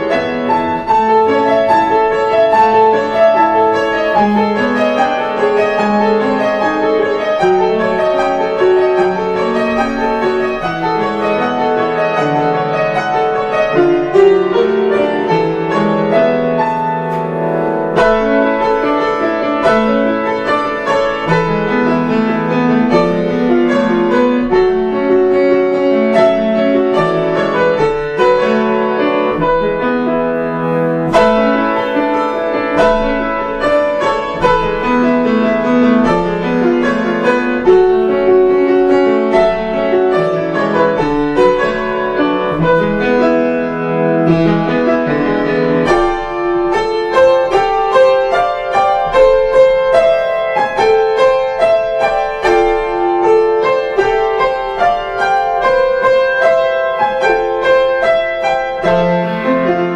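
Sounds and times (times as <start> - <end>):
solo piano piece: 0.0 - 59.9.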